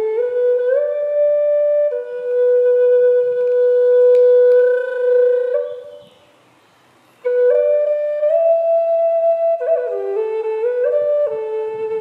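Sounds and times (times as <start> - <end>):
wooden flute playing: 0.0 - 6.4, 7.2 - 12.0.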